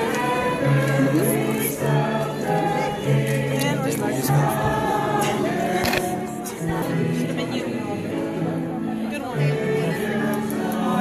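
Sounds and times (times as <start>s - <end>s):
choir singing long notes: 0.0s - 11.0s.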